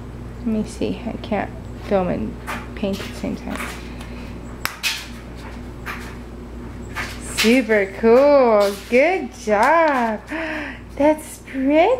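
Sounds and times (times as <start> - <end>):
faint steady hum: 0.0 - 11.9.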